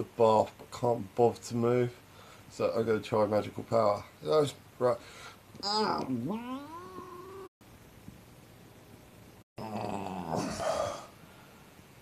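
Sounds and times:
man making gliding vocal noise: 5.6 - 7.5.

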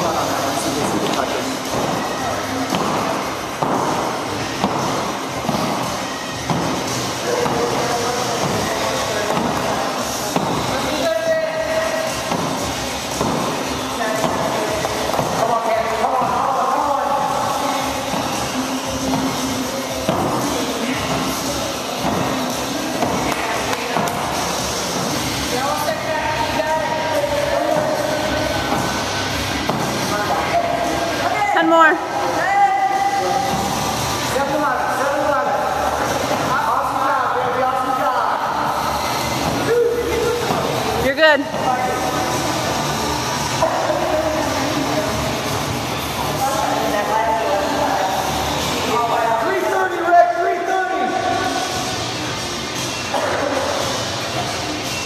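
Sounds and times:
background music: 0.0 - 55.0
battle ropes slapping wooden floor: 2.7 - 10.8, 12.0 - 16.5, 20.1 - 25.8.

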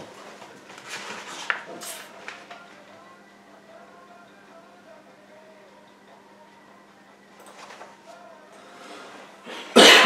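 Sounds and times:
man coughing: 9.7 - 10.0.

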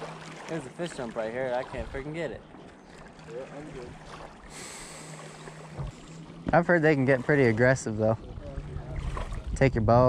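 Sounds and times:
steady low hum: 2.3 - 10.0.

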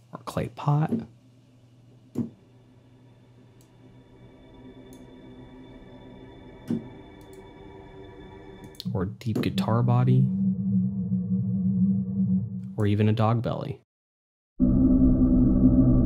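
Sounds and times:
sustained instrument tone: 3.8 - 12.7, 14.6 - 16.0.

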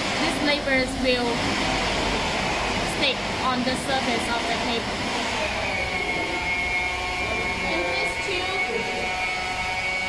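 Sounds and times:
machine running with high whine: 0.0 - 10.0.

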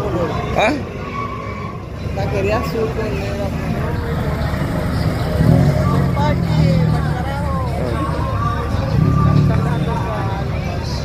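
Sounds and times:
crowd voices: 0.0 - 11.0
car engine driving past: 3.4 - 11.0.

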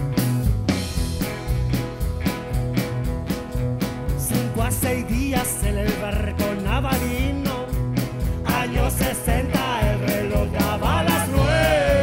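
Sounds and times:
folk-rock band playing: 0.0 - 12.0
person singing: 8.4 - 12.0.

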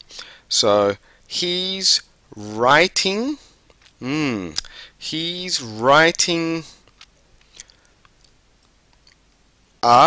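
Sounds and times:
man speaking: 0.5 - 6.8.

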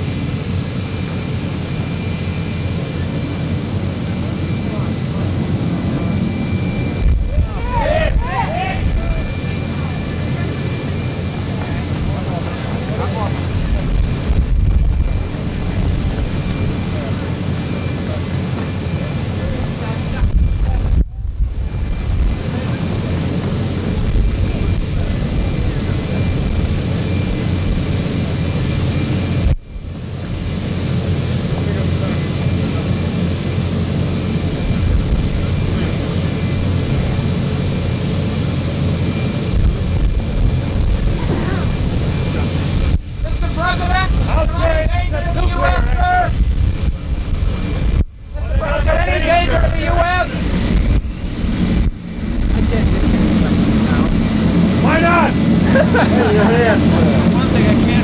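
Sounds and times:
crowd voices: 0.0 - 58.0
jet engines roaring: 0.0 - 58.0.

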